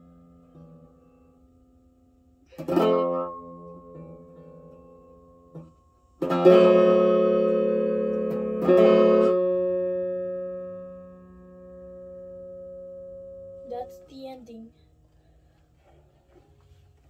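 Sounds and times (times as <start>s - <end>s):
guitar pluck: 0.0s - 15.2s
guitar chord strummed: 2.4s - 14.8s.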